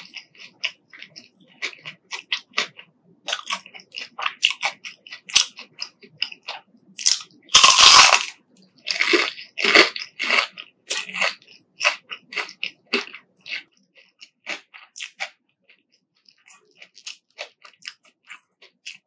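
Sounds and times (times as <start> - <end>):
fried chicken crunching: 0.0 - 19.0.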